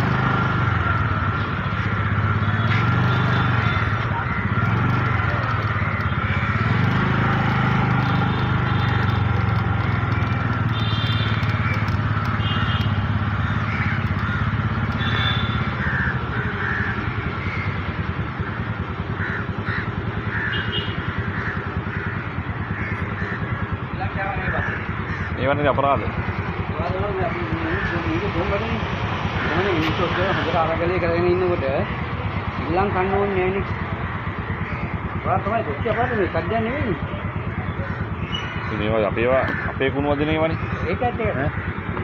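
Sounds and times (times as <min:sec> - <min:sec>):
motorcycle engine running: 0:00.0 - 0:42.0.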